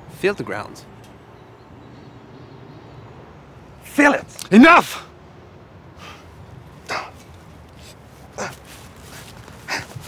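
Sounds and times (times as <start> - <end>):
man huffing breaths: 5.9 - 10.0.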